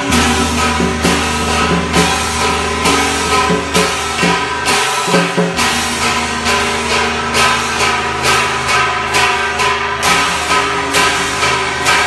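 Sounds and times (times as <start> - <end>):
sustained melody over drone: 0.0 - 4.8, 5.6 - 10.3
sharp percussion crash: 0.0 - 12.0.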